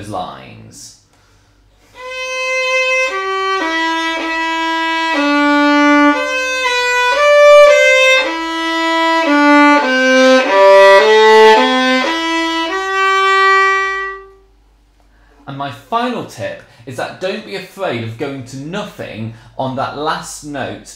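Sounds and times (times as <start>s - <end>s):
solo violin slow melody: 1.8s - 14.5s.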